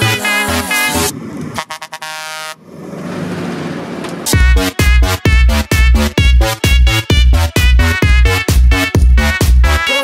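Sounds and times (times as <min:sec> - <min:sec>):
tractor horn toots: 0:00.0 - 0:02.7, 0:04.3 - 0:10.0
tractor engine and tyre noise: 0:00.0 - 0:07.9.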